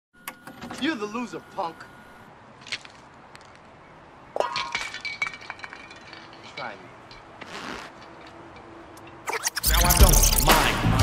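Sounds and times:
glass shattering: 4.4s - 7.2s.

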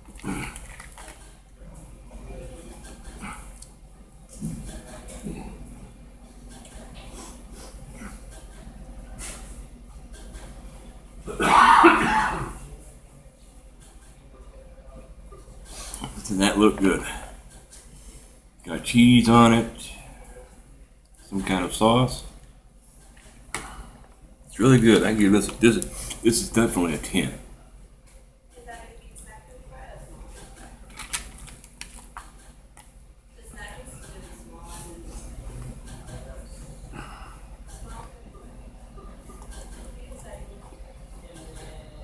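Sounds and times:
low room hum: 0.0s - 42.0s
man coughing: 11.3s - 12.6s.

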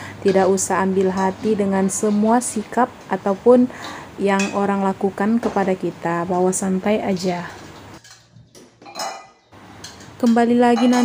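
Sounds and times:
ringing metal clink: 8.9s - 10.1s.

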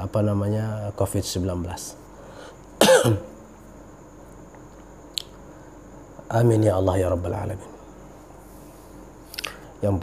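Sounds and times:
man coughing: 2.8s - 3.4s.

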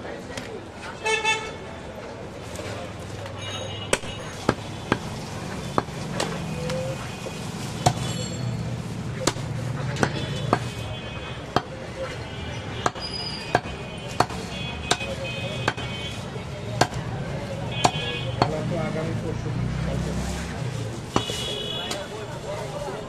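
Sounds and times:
cleaver chopping meat on wood: 3.9s - 6.4s, 7.8s - 8.0s, 9.1s - 10.7s, 11.5s - 11.7s, 12.8s - 15.9s, 16.8s - 17.1s, 17.8s - 18.7s.

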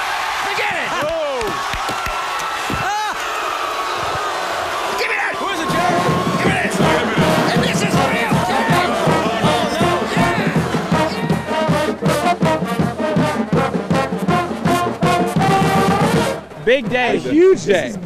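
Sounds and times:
crowd yelling: 0.0s - 12.9s
marching band playing: 5.4s - 17.9s.

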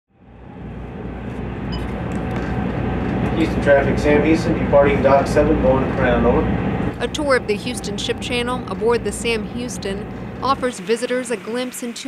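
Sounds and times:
low mechanical rumble on a boat: 0.2s - 11.5s.

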